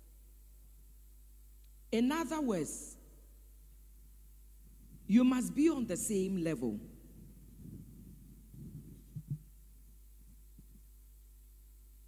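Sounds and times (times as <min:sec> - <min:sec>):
electrical hum: 0:00.0 - 0:12.0
soft low thumps: 0:07.0 - 0:10.9.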